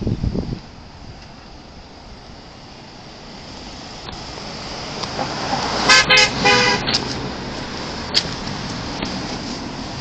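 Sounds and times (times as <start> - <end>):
passing traffic hiss: 0.0 - 10.0
car horn toots: 5.8 - 7.0.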